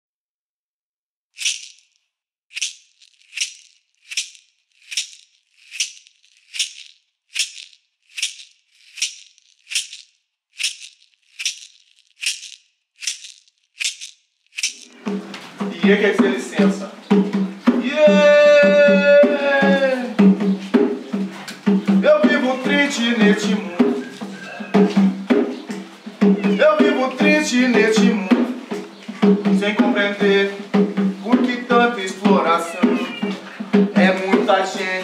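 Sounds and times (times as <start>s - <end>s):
hand shaker beat: 1.4s - 1.9s, 2.6s - 35.0s
drum: 13.8s - 35.0s
person's voice: 15.7s - 17.0s, 17.8s - 20.2s, 22.0s - 24.0s, 26.6s - 28.5s, 31.2s - 35.0s.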